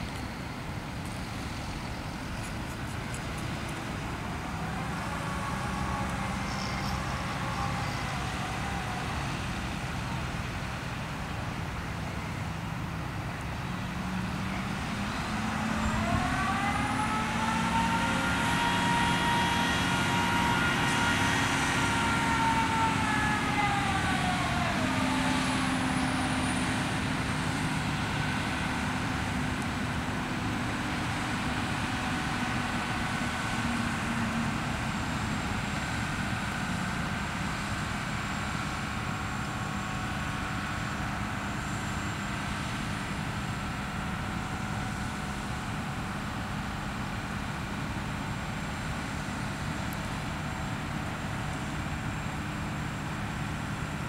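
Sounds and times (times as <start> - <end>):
crane engine rumbling: 0.0 - 54.0.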